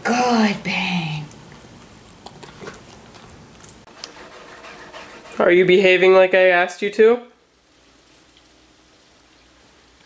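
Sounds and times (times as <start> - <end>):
dog chewing treat crunching: 1.7 - 3.6.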